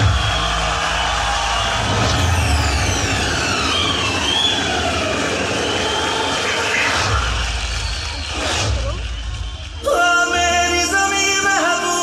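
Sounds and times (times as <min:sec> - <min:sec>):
falling whistling tones: 0:01.6 - 0:09.8.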